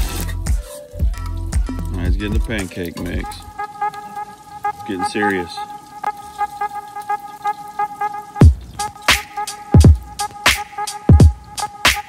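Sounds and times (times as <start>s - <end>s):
ticking hip hop rhythm: 0.0s - 5.6s, 6.7s - 12.0s.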